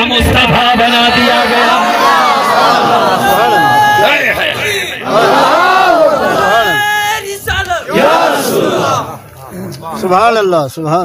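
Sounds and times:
crowd of men chanting: 0:00.9 - 0:07.2, 0:07.8 - 0:09.7.

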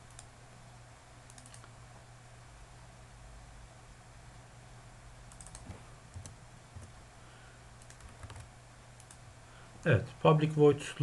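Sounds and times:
low steady hum: 0:00.0 - 0:11.0
keyboard keystrokes and clicks: 0:01.3 - 0:01.8, 0:05.3 - 0:07.0, 0:07.8 - 0:09.2.

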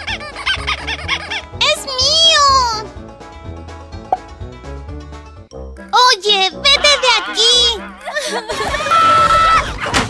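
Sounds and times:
children's cartoon music: 0:00.0 - 0:10.0.

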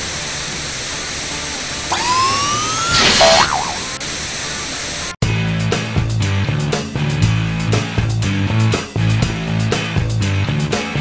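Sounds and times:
music: 0:00.0 - 0:11.0
whistle sliding up in pitch: 0:01.9 - 0:04.0.

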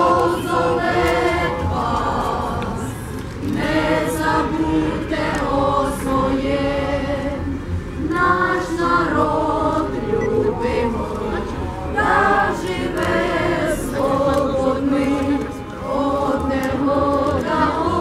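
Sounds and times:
choir singing slow song: 0:00.0 - 0:18.0.

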